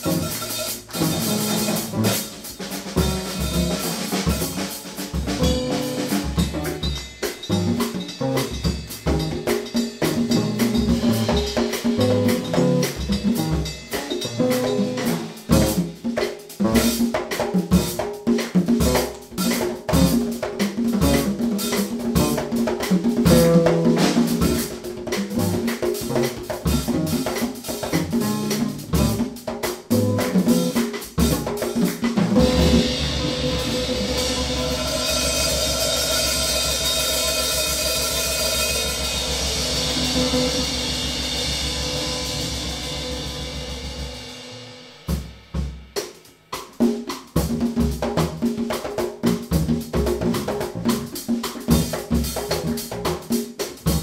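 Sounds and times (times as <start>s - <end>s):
electric bass: 0.0s - 2.4s, 12.0s - 15.9s, 23.3s - 29.2s, 32.3s - 36.4s, 39.1s - 43.8s
hand drums: 0.0s - 44.5s, 45.1s - 54.0s
drum kit: 0.0s - 54.0s.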